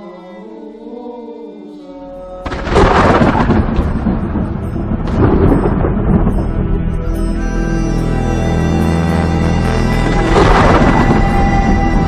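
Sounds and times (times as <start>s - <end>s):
film score music: 0.0s - 12.0s
thunder rumbling: 2.5s - 7.0s, 10.0s - 12.0s.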